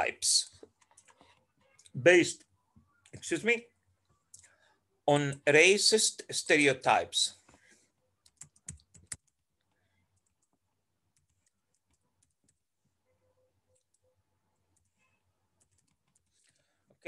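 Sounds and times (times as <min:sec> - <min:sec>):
typing on a computer keyboard: 0:08.2 - 0:09.4, 0:10.2 - 0:12.6.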